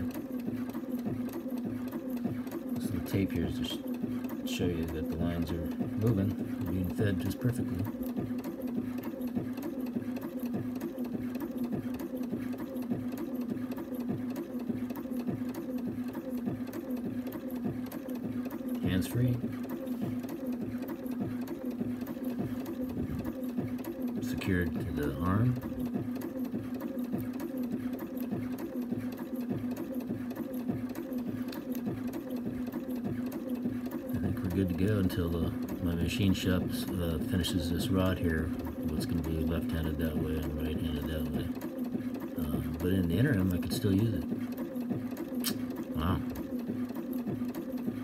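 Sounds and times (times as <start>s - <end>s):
sewing machine running: 0.0s - 48.0s.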